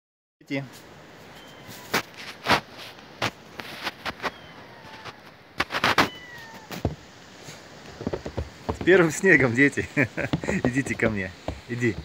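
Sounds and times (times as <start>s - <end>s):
crunching in snow: 1.7s - 12.0s.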